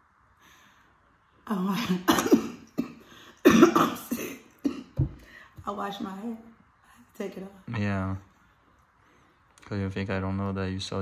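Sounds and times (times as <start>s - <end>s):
woman coughing: 1.7s - 5.2s
woman clearing her throat: 1.8s - 5.1s.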